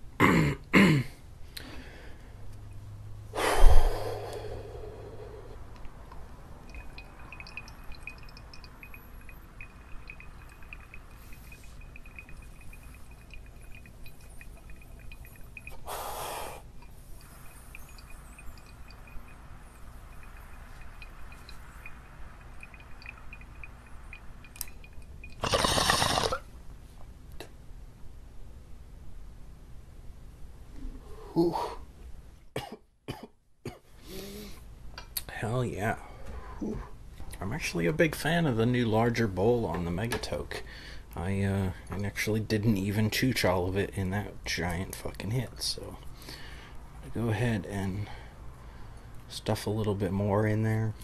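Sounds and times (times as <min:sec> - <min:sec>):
sharp inhale: 0:03.3 - 0:05.7, 0:15.8 - 0:16.7, 0:34.0 - 0:34.6, 0:46.2 - 0:46.8
bong water bubbling: 0:05.9 - 0:16.0, 0:16.6 - 0:26.4.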